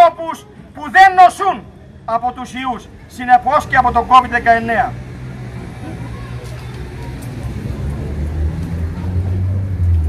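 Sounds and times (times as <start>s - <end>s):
vehicle engine rumble: 2.9s - 10.0s.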